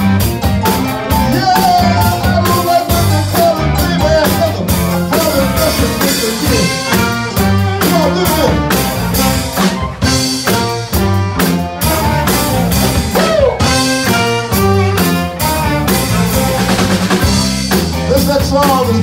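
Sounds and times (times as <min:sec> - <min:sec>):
horn section chords: 0:00.0 - 0:19.0
soul band playing: 0:00.0 - 0:19.0.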